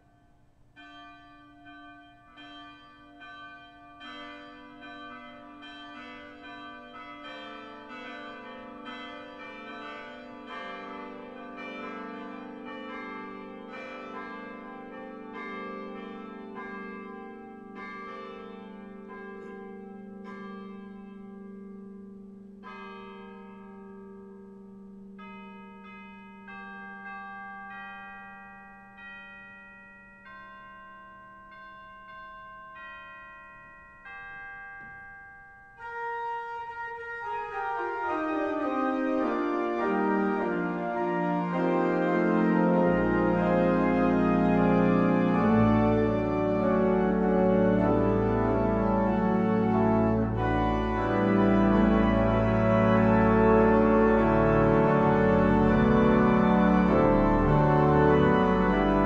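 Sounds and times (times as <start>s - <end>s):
church bells ringing: 0.0s - 59.0s.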